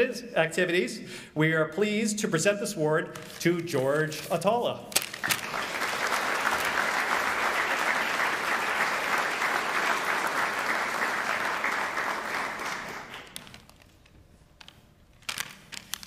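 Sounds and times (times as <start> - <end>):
audience applauding: 5.2 - 13.6.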